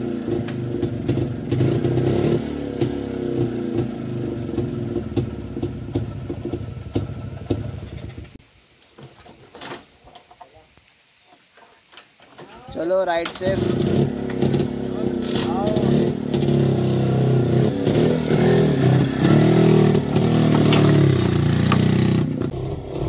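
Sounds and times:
motorcycle engines idling: 0.0 - 8.4, 12.7 - 23.0.

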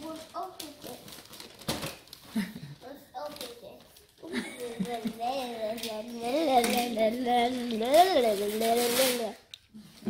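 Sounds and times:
small child's voice: 0.0 - 1.4, 2.8 - 9.5
wrapping paper rustling: 0.0 - 9.5.

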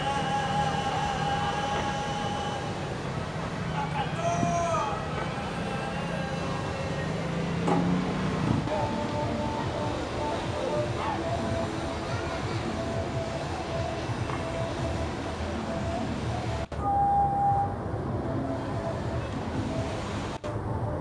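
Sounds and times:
crowd noise: 0.0 - 21.0.

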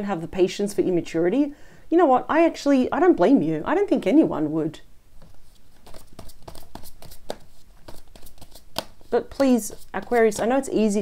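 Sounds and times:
cards being shuffled: 5.2 - 10.7.

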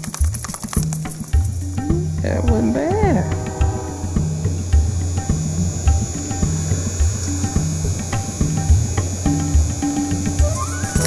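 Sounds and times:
dog shaking head collar rattling: 0.0 - 1.8
music with bass beat: 0.0 - 11.0.

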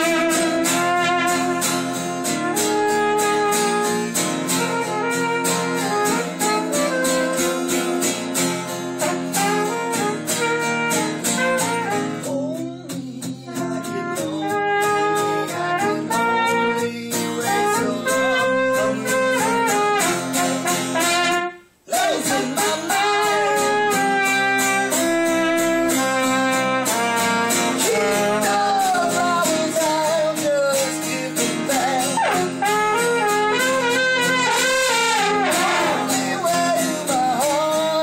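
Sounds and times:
trumpet melody: 0.0 - 12.6, 13.4 - 38.0
strummed acoustic guitar: 0.0 - 38.0.

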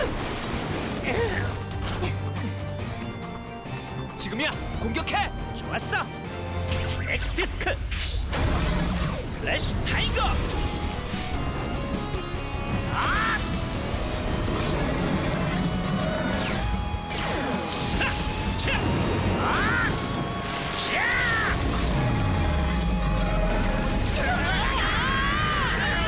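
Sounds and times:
action cartoon music: 0.0 - 26.0.

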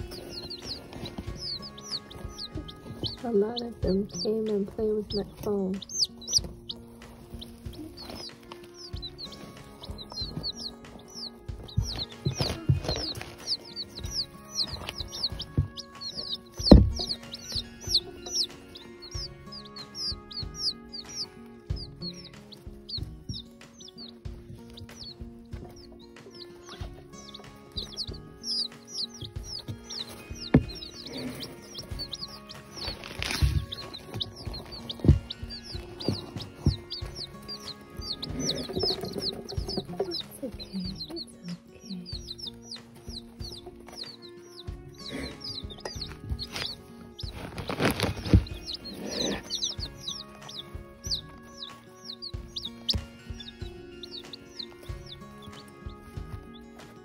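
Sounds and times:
chicks peeping: 0.0 - 57.0
knocks and bumps on phone: 16.6 - 18.0, 33.4 - 37.3.

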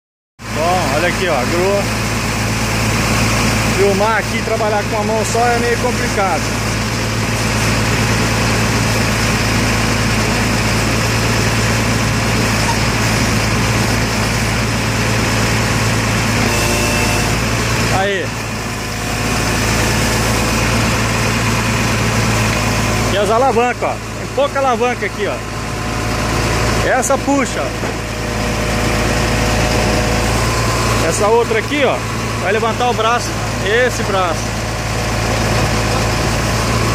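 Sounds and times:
truck engine idling: 0.4 - 36.9
brief higher tone: 16.4 - 17.5.

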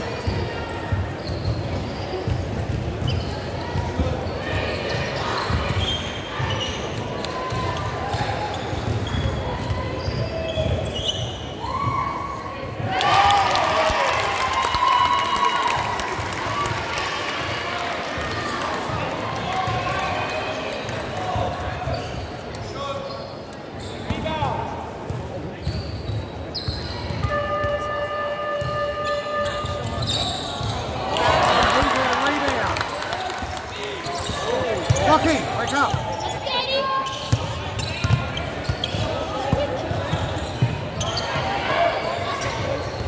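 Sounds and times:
voices echoing in a gym: 0.0 - 43.0.

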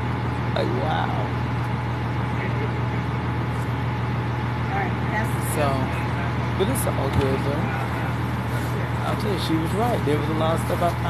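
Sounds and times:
vehicle engine hum and road noise: 0.0 - 11.0.

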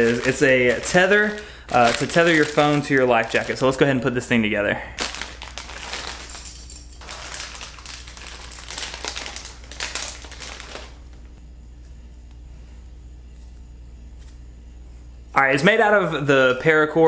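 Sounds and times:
plastic bag crinkling: 0.0 - 4.0, 5.0 - 11.4
low steady hum: 0.0 - 17.0.

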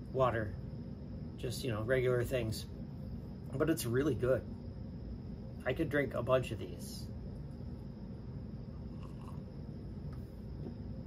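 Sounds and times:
steady low hum: 0.0 - 11.0
man drinking from glass: 8.8 - 9.5.

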